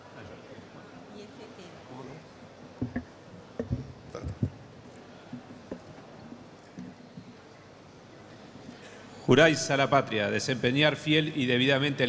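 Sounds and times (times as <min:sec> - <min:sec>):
low murmurs: 0:00.0 - 0:08.8.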